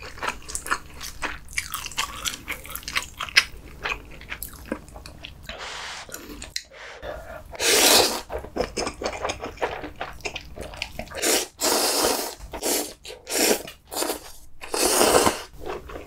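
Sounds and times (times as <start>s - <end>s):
person slurping noodles: 5.5s - 8.4s, 11.1s - 15.6s.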